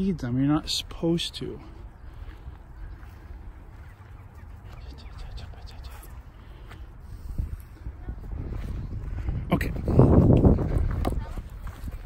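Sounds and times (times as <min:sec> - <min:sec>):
footsteps on grass: 0:01.5 - 0:12.0
wind on microphone: 0:05.0 - 0:12.0.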